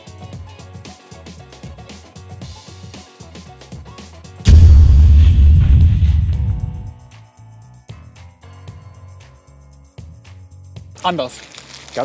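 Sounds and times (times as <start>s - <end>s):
deep boom sound effect: 4.5s - 7.0s.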